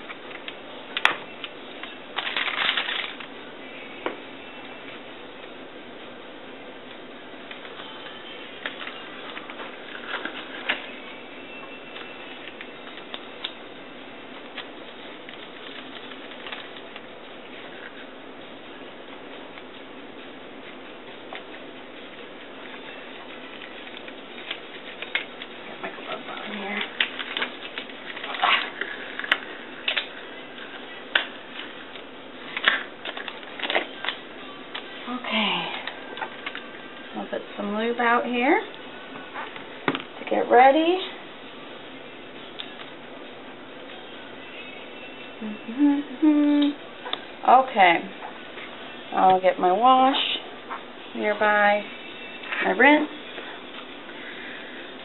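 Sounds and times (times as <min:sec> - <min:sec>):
paper packaging rustling: 0:02.1 - 0:03.3, 0:23.3 - 0:35.0.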